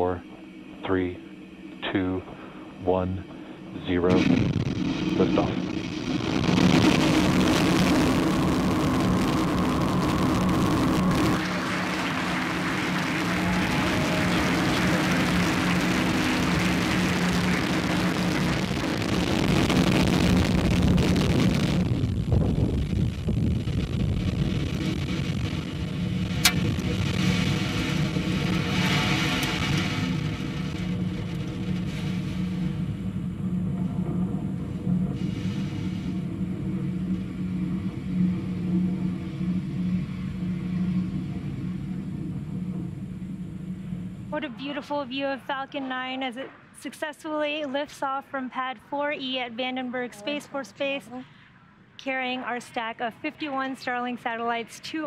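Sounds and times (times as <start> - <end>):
rocket engine roar: 0.0 - 54.9.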